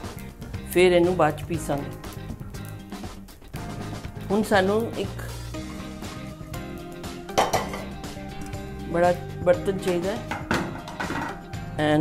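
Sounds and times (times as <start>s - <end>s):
background music: 0.0s - 12.0s
pan clanking on stove: 7.3s - 8.0s, 10.3s - 11.5s.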